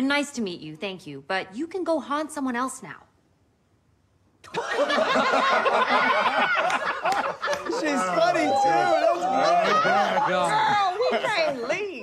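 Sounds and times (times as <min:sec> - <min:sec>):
group of people laughing: 0:04.5 - 0:11.9.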